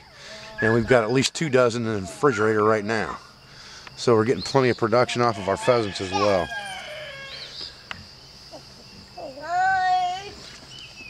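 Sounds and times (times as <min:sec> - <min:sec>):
bird chirp: 0:00.0 - 0:11.0.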